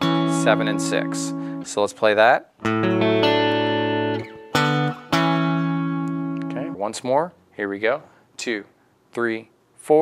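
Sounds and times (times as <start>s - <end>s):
electric guitar dyads ringing: 0.0s - 1.8s, 2.6s - 6.8s.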